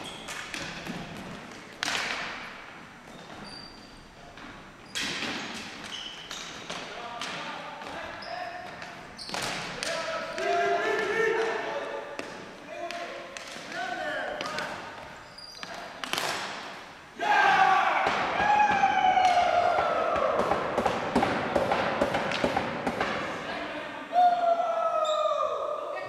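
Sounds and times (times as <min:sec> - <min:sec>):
hockey sticks clacking on floor: 0:00.0 - 0:23.6
players shouting: 0:09.7 - 0:12.2, 0:17.2 - 0:21.4, 0:23.3 - 0:26.0
players calling out: 0:17.1 - 0:21.0.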